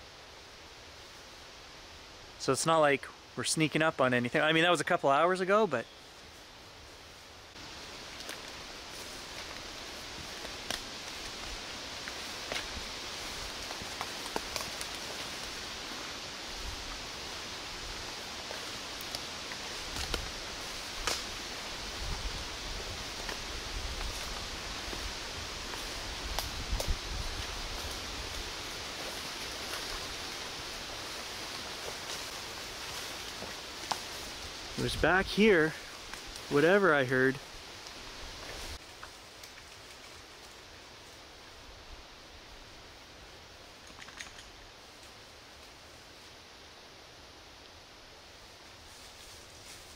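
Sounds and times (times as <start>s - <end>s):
wind hissing in trees: 0.0s - 49.9s
footsteps through rustling undergrowth: 5.4s - 41.5s, 48.6s - 49.9s
twigs snapping underfoot: 8.1s - 15.6s, 18.4s - 21.5s, 23.2s - 28.4s
wind rumble on microphone: 21.7s - 28.8s.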